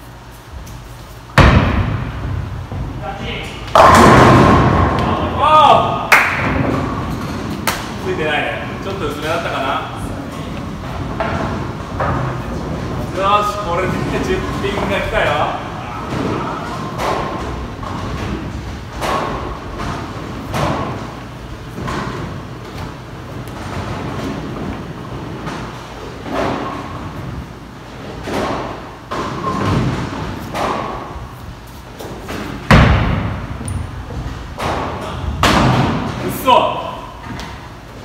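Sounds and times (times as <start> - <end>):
bowling balls thudding and rolling: 0.5 - 38.0
bowling pins clattering: 1.4 - 38.0.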